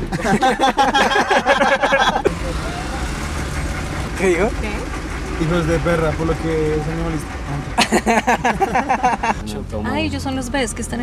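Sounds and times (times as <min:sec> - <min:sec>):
car engine rumble inside cabin: 0:00.0 - 0:11.0.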